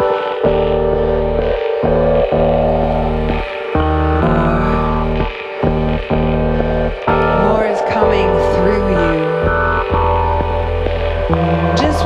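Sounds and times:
deep synthesizer drone: 0.0 - 12.0
sustained higher synth tones: 0.0 - 12.0.

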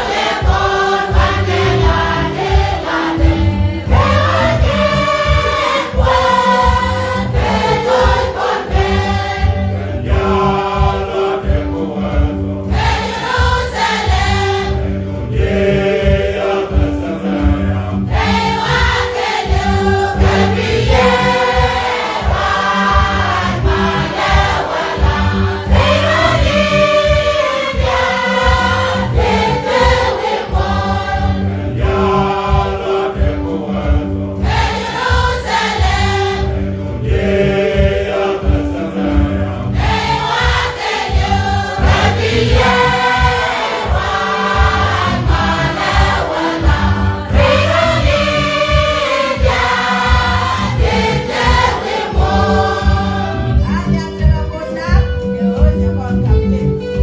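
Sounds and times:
choir singing a hymn: 0.0 - 53.8
keyboard chords: 0.0 - 57.0
steady low beat: 0.0 - 57.0.

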